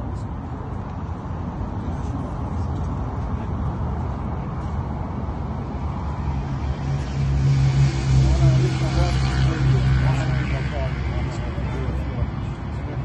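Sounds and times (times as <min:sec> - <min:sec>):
faint indistinct voices: 0:00.0 - 0:05.5, 0:07.9 - 0:13.0
low engine hum: 0:00.0 - 0:13.0.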